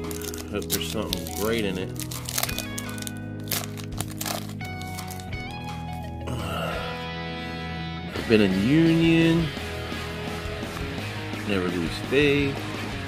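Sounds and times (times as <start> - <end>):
wrapper crinkling as torn open: 0.0 - 6.2
background music: 0.0 - 13.0.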